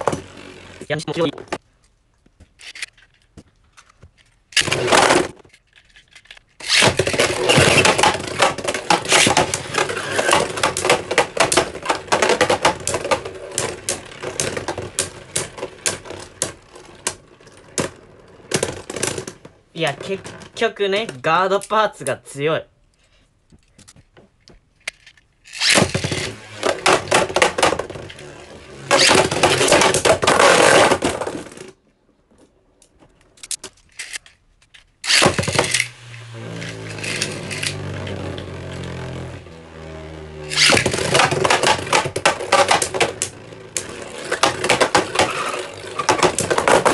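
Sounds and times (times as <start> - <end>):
loud clatter: 4.6 - 17.1, 25.5 - 31.8, 35.1 - 39.6, 40.4 - 46.9
spinning tops clacking together: 24.9 - 27.6, 36.6 - 37.8.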